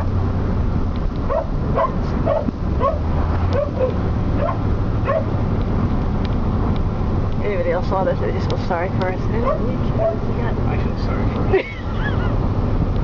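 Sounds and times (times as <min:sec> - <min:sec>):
car engine droning: 0:00.0 - 0:13.0
dog yelping whines: 0:01.3 - 0:03.0, 0:03.6 - 0:05.3.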